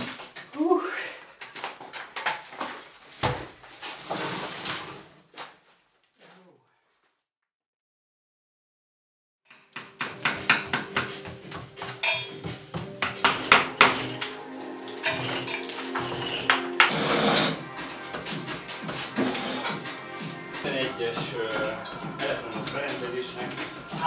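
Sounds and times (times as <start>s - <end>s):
scrapers scraping plaster: 3.8s - 5.2s, 15.0s - 24.0s
sharp metallic knocks: 11.8s - 14.3s, 15.1s - 17.2s.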